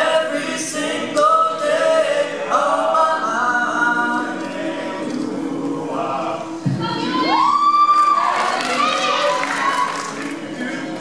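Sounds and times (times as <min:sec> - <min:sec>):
sustained backing voices: 0:00.0 - 0:07.4, 0:08.3 - 0:11.0.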